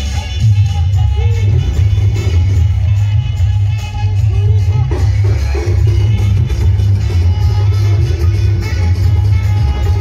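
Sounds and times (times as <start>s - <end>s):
loud bass-heavy dj music: 0.0s - 10.0s.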